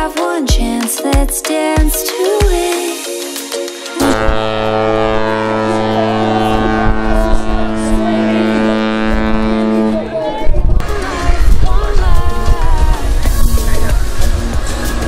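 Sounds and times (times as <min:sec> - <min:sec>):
music: 0:00.0 - 0:15.0
ship horn long deep blast: 0:04.0 - 0:10.2.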